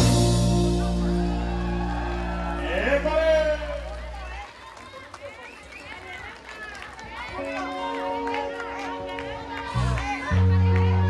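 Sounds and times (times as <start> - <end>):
crowd calling out and chattering: 0.0 - 11.0.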